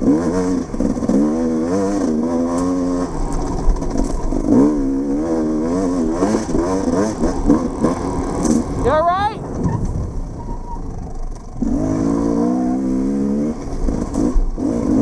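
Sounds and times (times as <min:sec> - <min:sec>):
dirt bike engine revving: 0:00.0 - 0:15.0.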